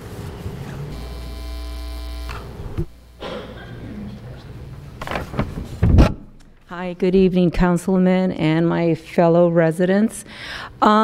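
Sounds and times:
buzzy electrical mains hum: 0.0 - 11.0.

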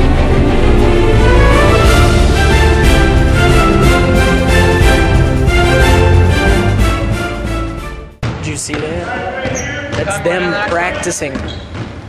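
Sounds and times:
basketball bouncing: 8.2 - 12.0.

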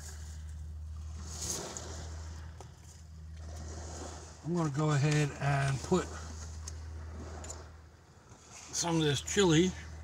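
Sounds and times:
low engine drone: 0.0 - 10.0
wake waves washing against riverbank: 0.0 - 10.0.

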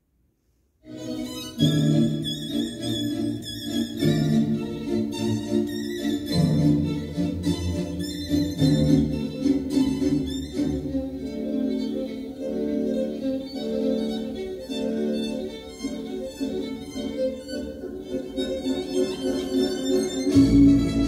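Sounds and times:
string music over speakers: 0.8 - 21.0.

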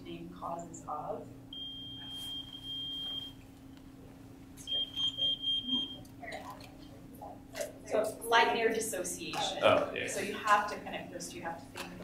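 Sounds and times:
faint low hum: 0.0 - 12.0
rapid pulsing beeps: 1.5 - 3.4, 4.6 - 6.0
high-pitched electronic beep tone: 4.7 - 6.0.

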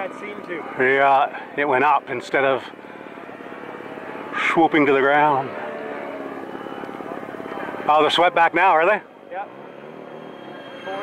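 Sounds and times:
model airplane engine buzzing: 0.0 - 11.0.

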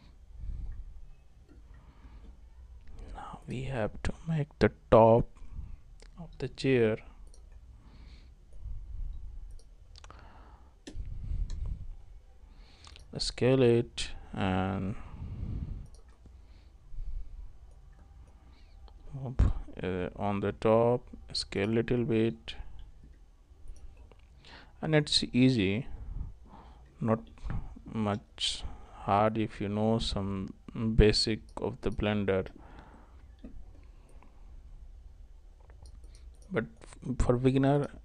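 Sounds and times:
man speaking: 13.1 - 15.0, 19.1 - 22.7, 36.5 - 38.0.

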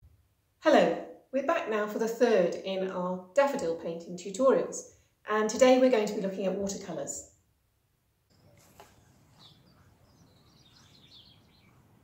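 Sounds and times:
faint high bird chirps: 8.3 - 12.0.

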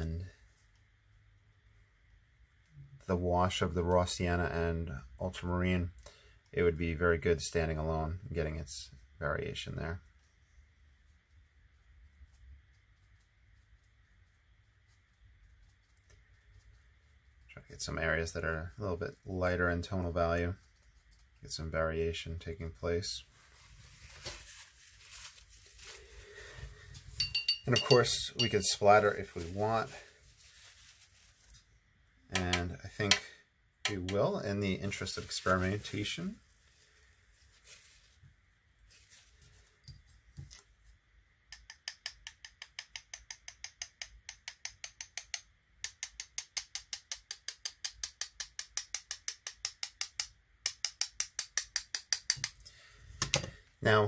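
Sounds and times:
soft rustling handling sounds: 15.7 - 31.9, 34.1 - 41.0
brush tapping against brush: 24.1 - 31.7, 32.3 - 36.1, 41.5 - 52.6.

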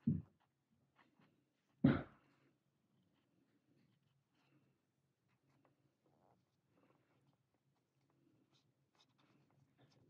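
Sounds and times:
cotton swab rubbing plastic: 5.3 - 10.0.

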